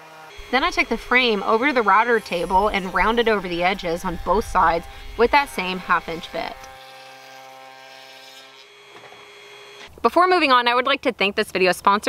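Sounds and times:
router table whining: 0:00.4 - 0:09.2.

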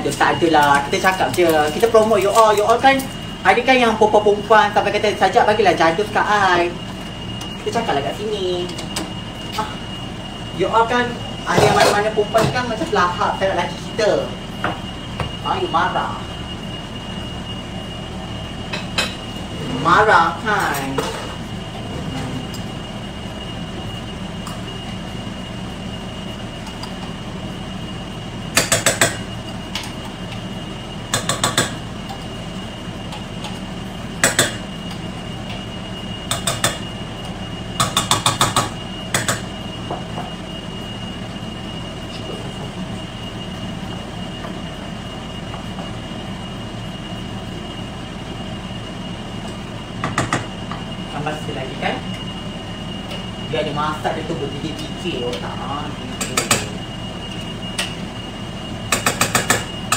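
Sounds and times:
appliance hum with high whine: 0:00.0 - 0:59.9.

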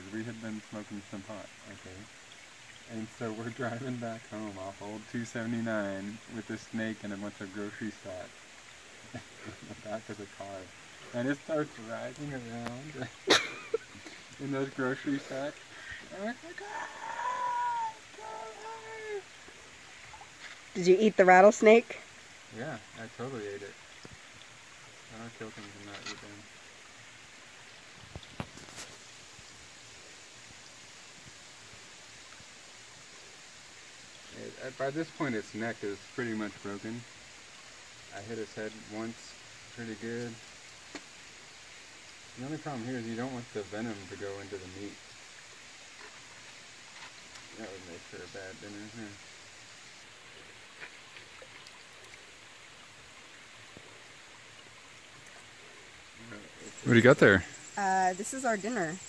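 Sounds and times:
creek water flowing: 0:00.0 - 0:59.0.

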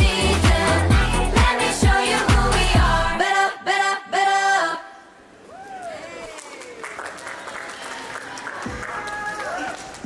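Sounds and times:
people whooping and calling out: 0:05.4 - 0:07.1, 0:07.7 - 0:10.0.

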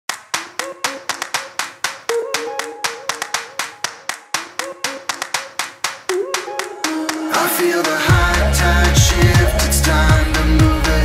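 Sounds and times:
rhythmic hand claps: 0:00.1 - 0:11.0.

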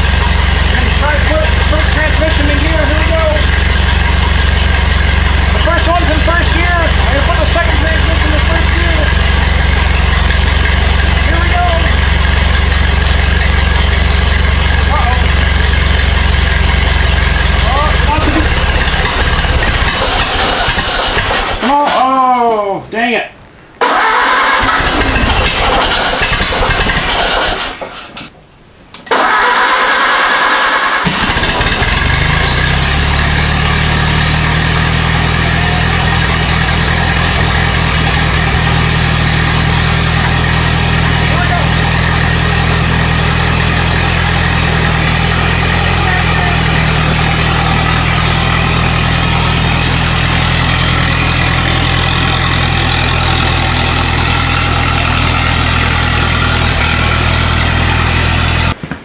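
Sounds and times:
engine catching and idling: 0:00.0 - 0:21.7, 0:23.8 - 0:28.1, 0:29.1 - 0:58.8.

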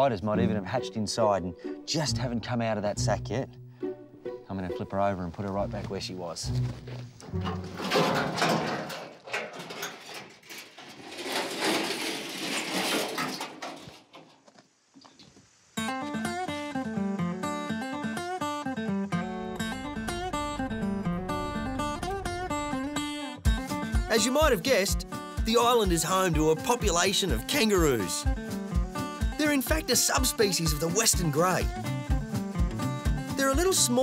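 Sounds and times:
plucked acoustic guitar: 0:06.5 - 0:08.9, 0:15.8 - 0:30.4, 0:31.2 - 0:33.8
corrugated iron scraping: 0:06.8 - 0:14.4.

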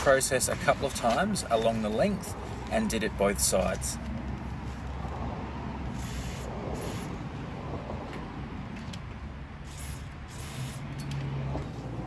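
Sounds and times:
aerosol spray hissing: 0:06.0 - 0:07.1, 0:09.7 - 0:10.9.

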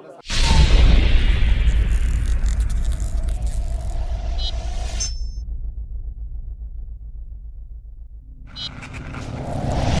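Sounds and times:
deep pulsing bass rumble: 0:00.5 - 0:09.2.

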